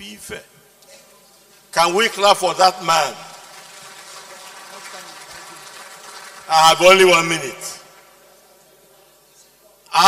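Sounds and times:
audience applause: 2.9 - 8.3.

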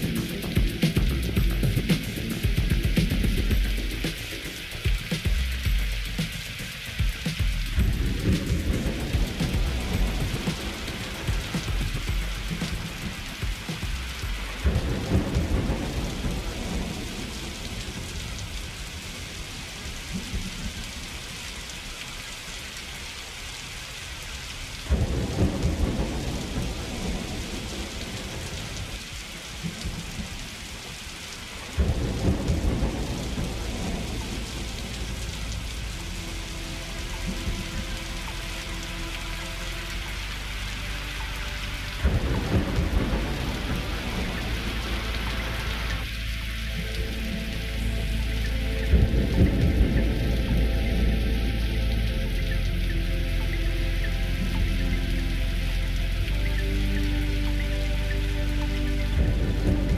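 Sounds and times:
thunder rumbles: 0.0 - 21.7, 24.7 - 59.9
rain hiss: 0.0 - 59.9.

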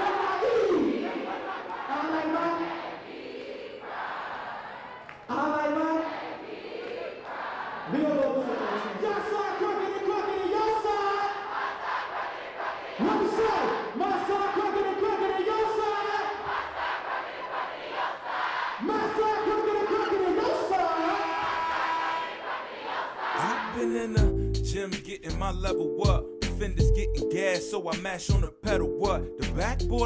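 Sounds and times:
crowd yelling long held shouts: 0.0 - 5.0, 5.6 - 23.7.

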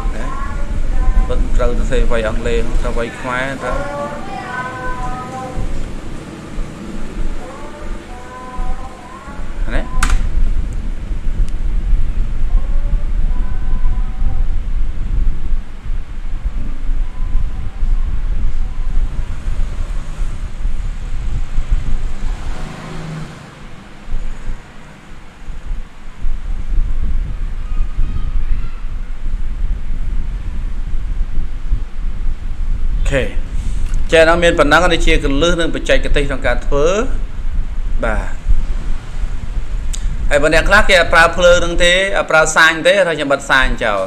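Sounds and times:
loud low rumbling: 0.0 - 42.8.

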